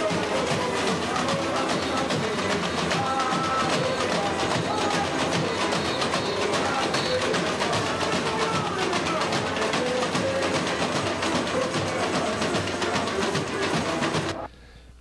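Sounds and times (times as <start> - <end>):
fast percussion beat: 0.0 - 14.5
guitar: 0.0 - 14.5
voices singing: 0.0 - 14.5.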